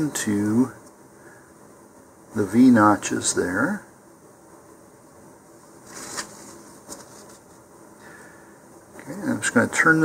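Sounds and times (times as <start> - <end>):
short rustle: 5.7 - 7.6.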